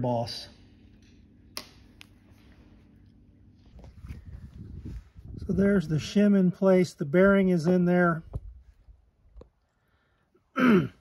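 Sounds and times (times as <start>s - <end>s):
low rustling handling noise: 1.9s - 6.3s.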